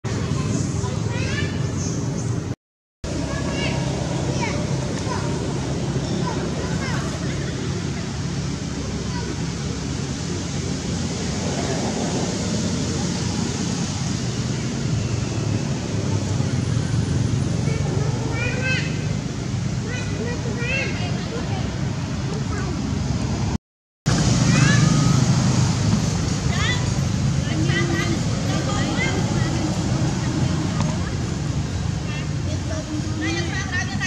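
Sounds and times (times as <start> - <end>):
people talking: 0.1 - 2.0, 3.1 - 10.8, 11.4 - 15.1, 15.8 - 19.2, 19.8 - 23.0, 24.1 - 25.2, 26.4 - 34.0
indistinct distant voices: 3.1 - 23.4.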